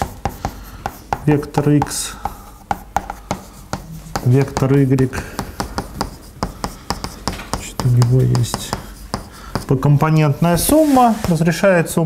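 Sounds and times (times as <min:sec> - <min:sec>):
chalk tapping and scraping on blackboard: 0:00.0 - 0:11.7.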